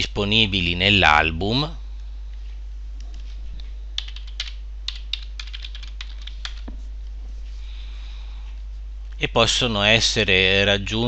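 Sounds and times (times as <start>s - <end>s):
low electrical hum: 0.0s - 11.0s
computer keyboard typing: 4.0s - 6.7s.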